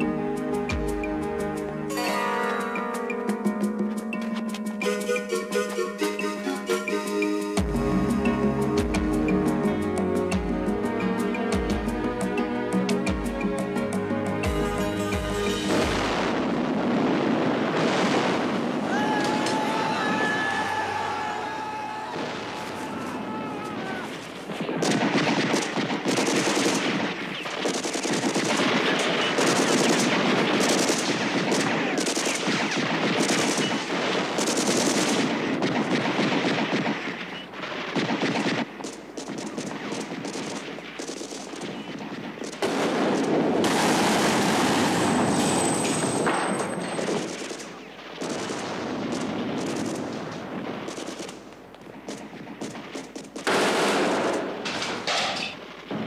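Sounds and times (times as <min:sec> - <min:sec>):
automatic gunfire: 0:24.5 - 0:55.2.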